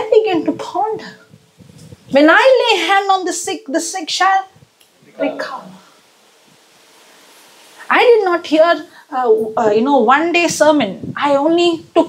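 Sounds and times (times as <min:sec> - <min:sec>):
faint background noise: 0:00.0 - 0:12.0
woman speaking amplified: 0:02.1 - 0:04.5, 0:05.2 - 0:05.8, 0:07.9 - 0:12.0.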